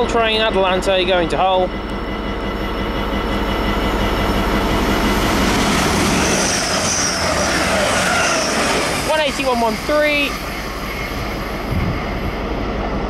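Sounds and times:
train passing at speed: 0.0 - 13.0.

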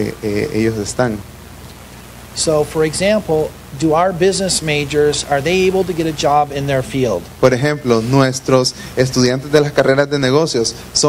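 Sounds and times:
man speaking into a microphone: 0.0 - 1.3, 2.4 - 11.0
steady hiss: 0.0 - 11.0.

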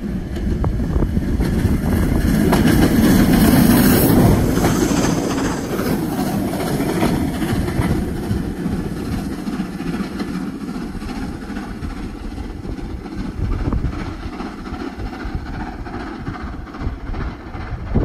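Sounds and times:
steam train rumbling past: 0.0 - 18.0.

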